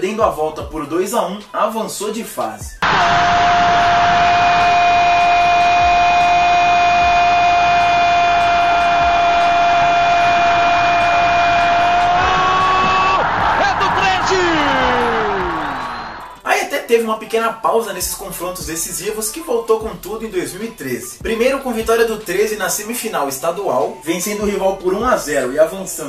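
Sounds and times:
stadium crowd noise: 0:02.8 - 0:06.2, 0:08.8 - 0:16.4
commentator shouting: 0:12.5 - 0:15.8.

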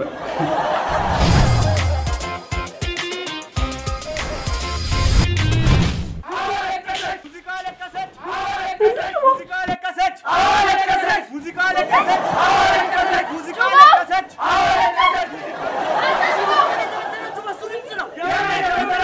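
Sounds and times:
crowd shouting and chanting: 0:06.2 - 0:19.0.

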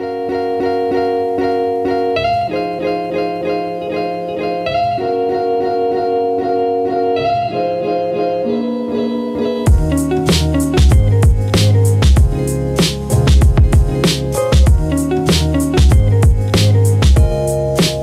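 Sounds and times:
plucked string music: 0:00.0 - 0:18.0.

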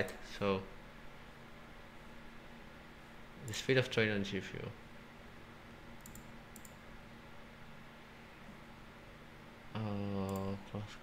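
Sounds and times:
computer mouse clicks: 0:06.0 - 0:06.8.

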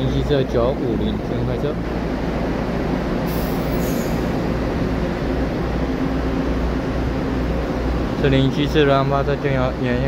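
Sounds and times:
electric train humming: 0:00.0 - 0:10.0.

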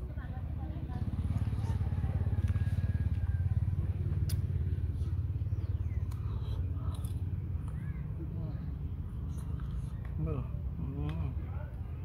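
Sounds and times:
small engine running: 0:00.5 - 0:10.0.

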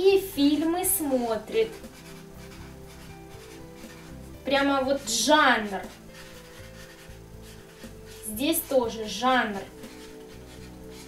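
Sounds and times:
quiet background music: 0:00.0 - 0:11.0
marker pen rubbing on paper: 0:00.5 - 0:11.0.

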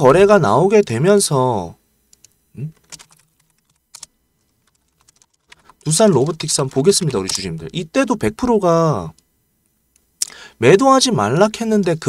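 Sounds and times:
computer keyboard key clicks: 0:02.1 - 0:05.8.

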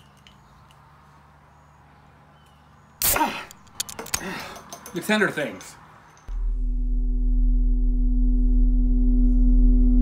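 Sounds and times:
electronic drone with held tones: 0:06.4 - 0:10.0.

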